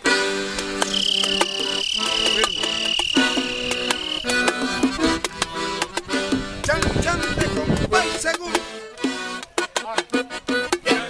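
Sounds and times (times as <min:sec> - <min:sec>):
accordion chords: 0:00.0 - 0:11.0
high steady tone: 0:00.8 - 0:05.1
hand drums: 0:00.8 - 0:07.7.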